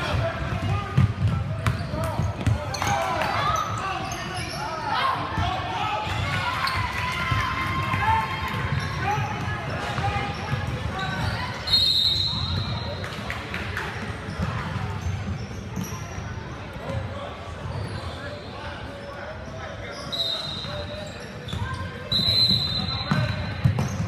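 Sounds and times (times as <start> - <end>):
players' voices and calls: 0.0 - 24.0
shrill high-pitched whistle: 11.6 - 12.8, 20.0 - 20.9, 22.0 - 23.2.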